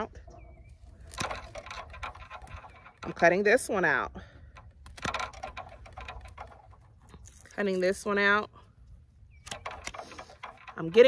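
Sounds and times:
faint branch rustling: 0.3s - 11.0s.

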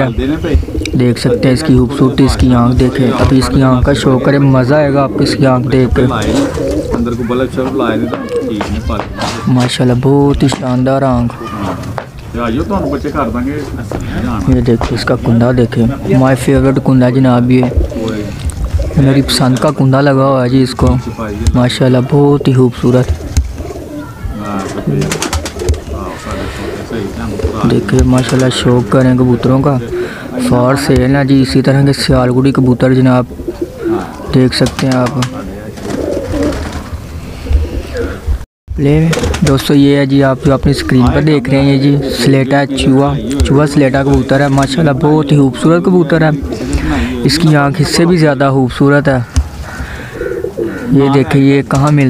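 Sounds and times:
pigeons cooing: 0.0s - 52.0s.

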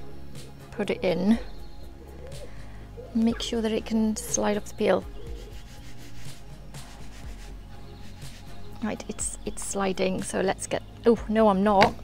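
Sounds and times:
faint background music: 0.0s - 12.0s
steady low hum: 0.0s - 12.0s
dough shuffling on wooden peel: 5.2s - 8.6s.

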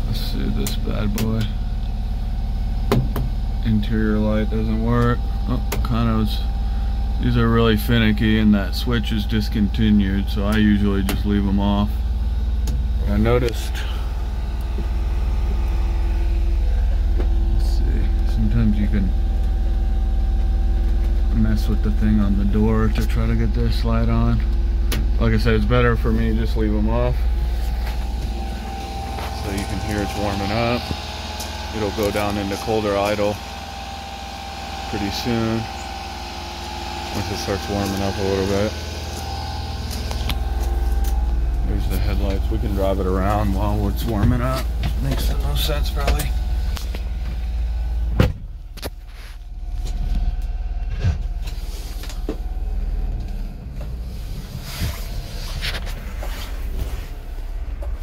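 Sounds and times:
engine idling fast: 0.0s - 48.8s.

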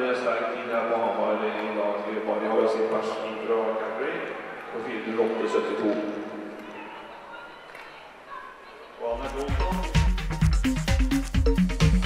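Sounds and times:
man making announcement: 0.0s - 6.4s, 9.0s - 10.1s.

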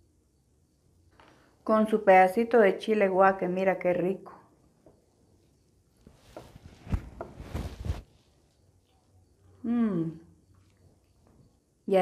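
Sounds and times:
soft thumps: 6.1s - 8.0s.

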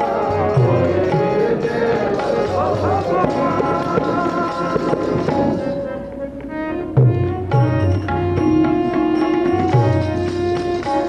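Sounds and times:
harmonium holding notes: 0.0s - 11.0s
tabla strokes: 0.0s - 11.0s.

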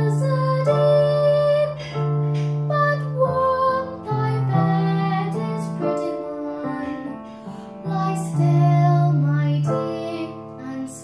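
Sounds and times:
girl singing a lullaby: 0.0s - 11.0s
piano accompaniment: 0.0s - 11.0s.

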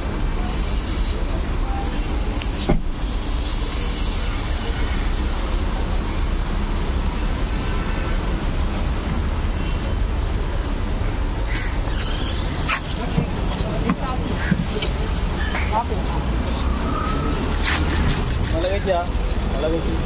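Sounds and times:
street noise rumble and hiss: 0.0s - 20.0s
car door shutting: 2.6s - 3.0s.

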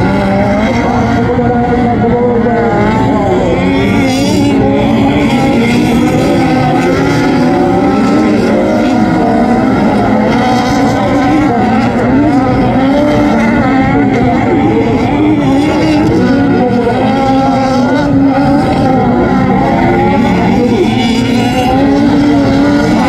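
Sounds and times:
racing car engines revving: 0.0s - 23.0s.

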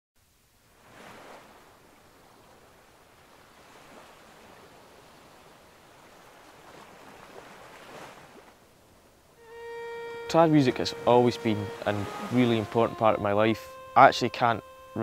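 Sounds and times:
sea waves breaking on shore: 0.6s - 13.5s.

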